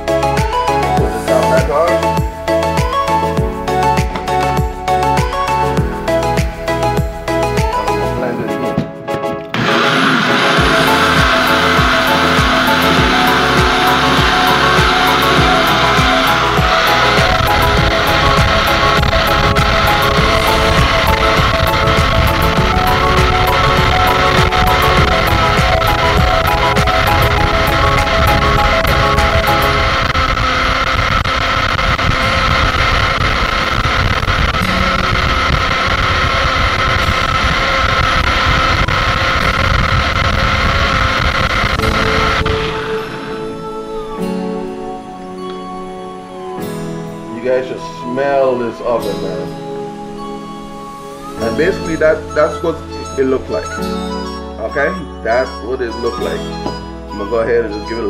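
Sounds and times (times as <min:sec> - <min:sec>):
background music: 0:00.0 - 0:58.0
blender motor running: 0:09.6 - 0:44.1.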